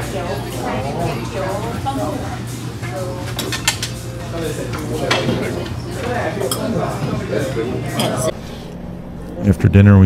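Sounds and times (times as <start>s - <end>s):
cutlery clinking on dishes: 3.2s - 7.2s, 7.9s - 8.3s.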